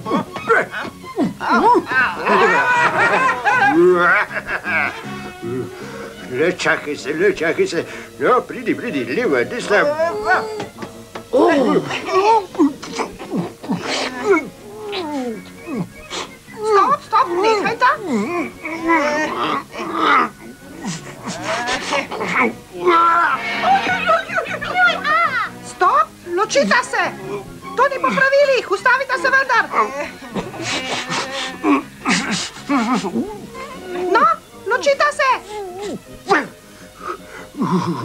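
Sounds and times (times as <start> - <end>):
cartoon voice whining cries: 9.7 - 10.7
breathy vocal burst: 29.7 - 33.2.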